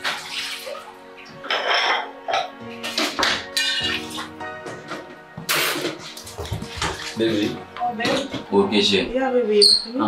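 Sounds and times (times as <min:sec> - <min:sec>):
tap water splashing into sink: 0:00.0 - 0:01.0, 0:02.8 - 0:08.5
background music: 0:00.0 - 0:10.0.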